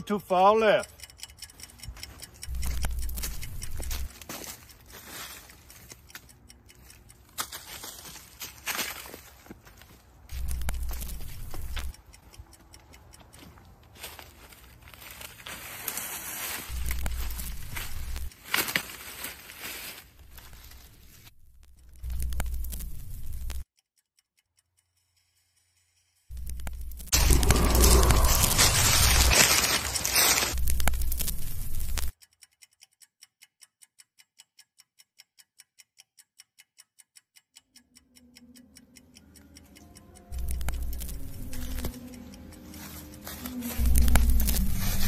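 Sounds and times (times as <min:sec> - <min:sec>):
deep low rumble: 0:02.5 - 0:04.1, 0:10.3 - 0:11.9, 0:16.7 - 0:18.3, 0:26.3 - 0:32.1, 0:40.3 - 0:45.0
footsteps through dry leaves: 0:07.4 - 0:11.1, 0:13.9 - 0:21.3, 0:27.2 - 0:32.1, 0:42.8 - 0:45.0.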